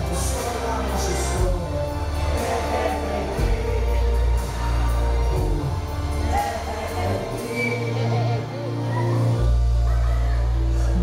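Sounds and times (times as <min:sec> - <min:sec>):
bass line: 0:00.0 - 0:11.0
live band music: 0:00.0 - 0:11.0.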